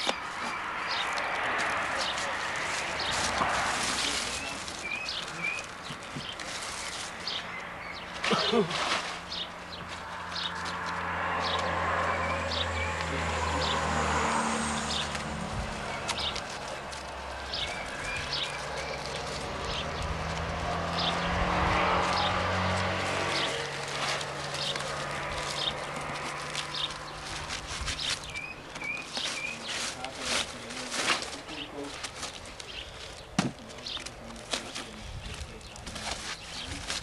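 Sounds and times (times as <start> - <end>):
small birds chirping: 0.0 - 8.3, 9.2 - 37.0
vehicles passing: 0.0 - 37.0.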